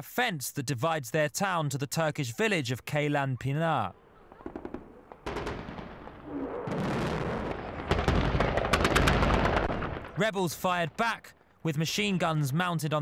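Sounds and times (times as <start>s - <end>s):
machine-gun fire: 6.8s - 10.2s.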